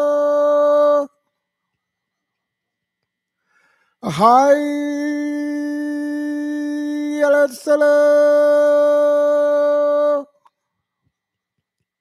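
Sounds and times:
man calling to prayer: 0.0 - 1.2, 4.0 - 10.3.

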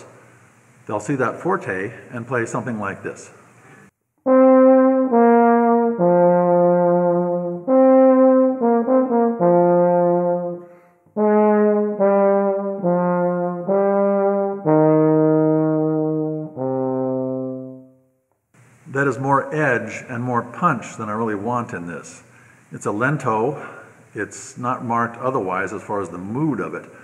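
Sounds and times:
breath: 3.6 - 3.9, 10.6 - 11.2, 22.3 - 22.7, 23.6 - 24.1
euphonium solo: 4.2 - 18.0.

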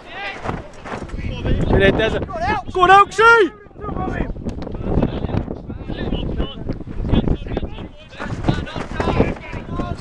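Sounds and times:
wind rumbling on microphone: 0.0 - 10.0
football players shouting: 1.4 - 4.3, 7.3 - 10.0.

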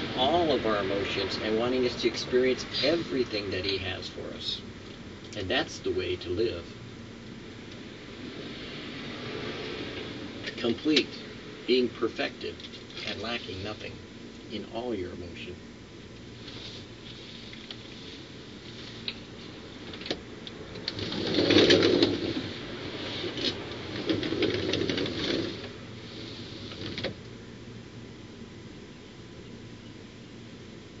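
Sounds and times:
steady low hum: 0.0 - 31.0
person moving about scraping: 16.4 - 19.6, 20.9 - 27.0.

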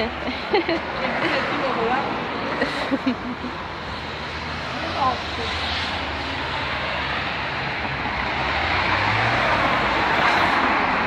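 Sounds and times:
road traffic engine and tyre noise: 0.0 - 11.0.

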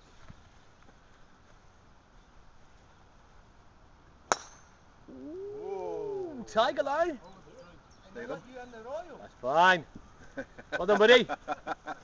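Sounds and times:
golf club striking ball: 4.3 - 4.8
man exclaiming: 5.1 - 7.2.

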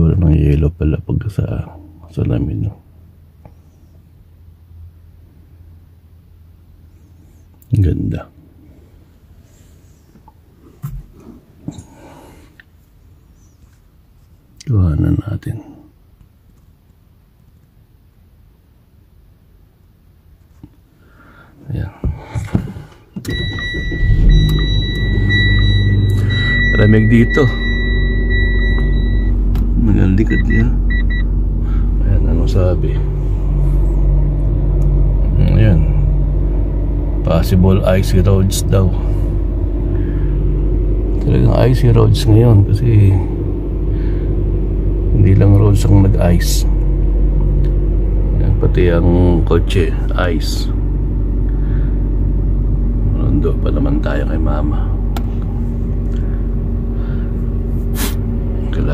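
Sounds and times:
car engine starting and idling: 22.6 - 58.9
high-pitched electronic tone: 23.3 - 29.4.

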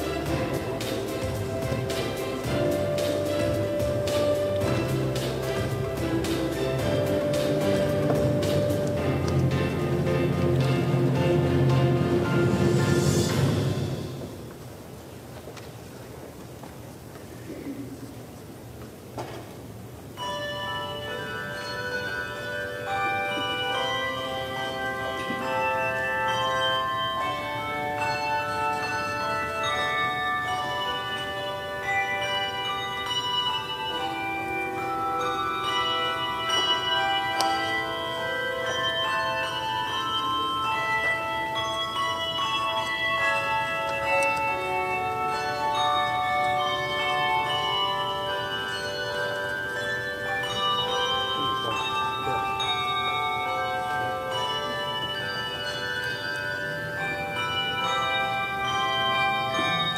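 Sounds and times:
handbell choir playing: 0.0 - 14.6, 20.1 - 59.9.

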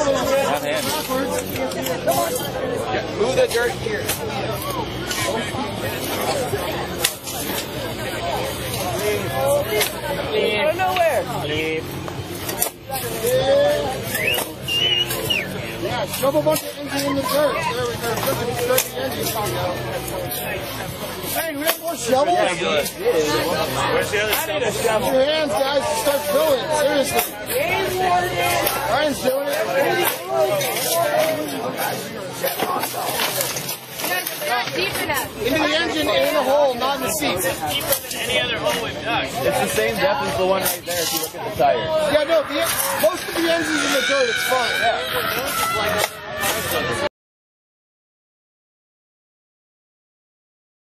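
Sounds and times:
indistinct chatter: 0.0 - 47.1
people talking over one another: 0.0 - 47.1.

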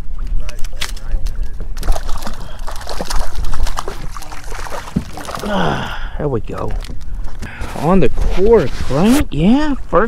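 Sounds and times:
small water splashes: 0.7 - 7.0
water lapping against kayak hull: 1.5 - 9.4.

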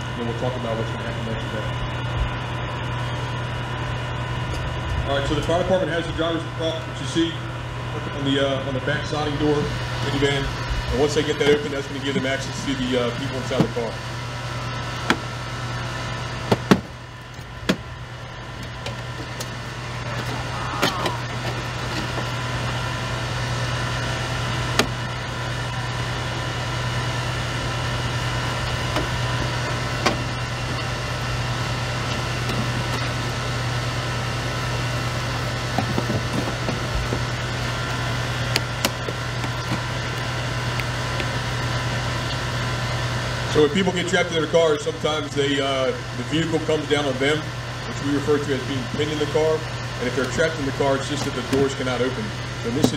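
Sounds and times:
small engine running: 0.0 - 52.9.

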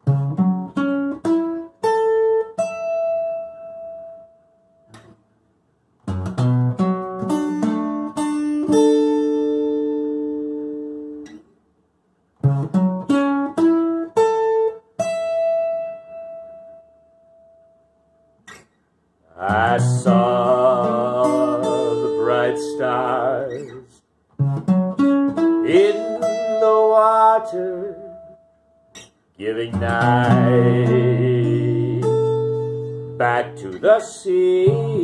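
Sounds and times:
sustained wordless vocal tone: 19.3 - 24.0, 25.7 - 28.2, 29.4 - 32.2, 33.2 - 35.0
acoustic guitar note ringing: 19.4 - 23.8, 24.4 - 35.0
faint guitar pluck: 19.4 - 35.0.

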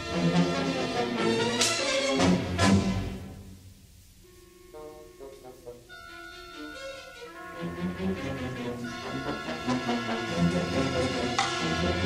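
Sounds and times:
loud full orchestra: 0.0 - 3.4, 4.3 - 12.0
soft held orchestral notes: 0.0 - 12.0.

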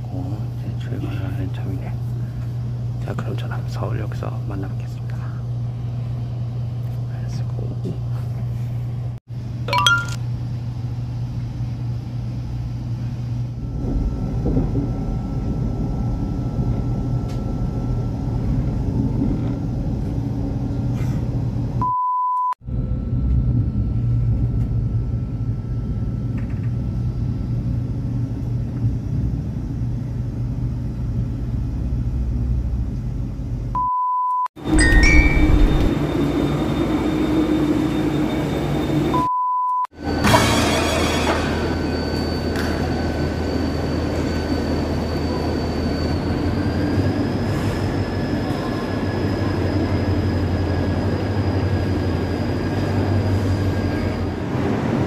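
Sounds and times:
train rumble from inside carriage: 0.0 - 6.0, 12.9 - 21.8, 22.8 - 33.8, 34.6 - 39.2, 40.0 - 55.0
short steady beep: 21.8 - 22.6, 33.8 - 35.9, 39.2 - 39.9.

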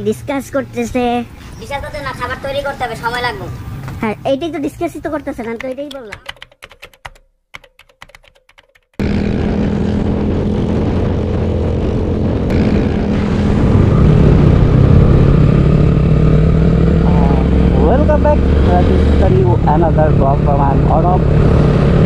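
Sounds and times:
keyboard-like clicking: 5.6 - 8.9
motorcycle engine running: 9.0 - 22.0
wind noise: 9.0 - 22.0.

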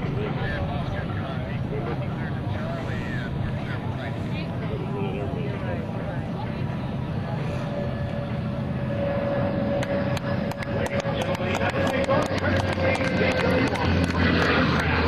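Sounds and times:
low engine rumble: 0.0 - 15.0
turboprop engines whining: 0.0 - 15.0.

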